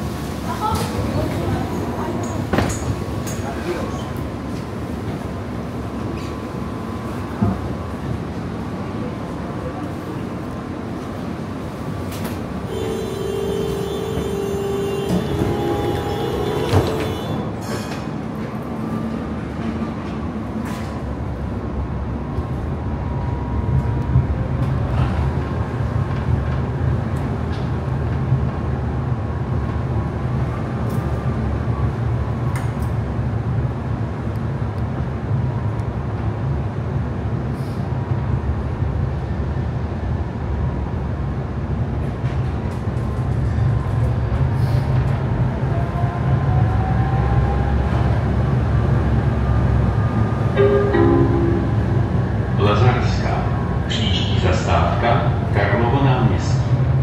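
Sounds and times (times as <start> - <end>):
tram running gear rumbling on rails: 0.0 - 57.0
steady high tone: 50.5 - 53.6.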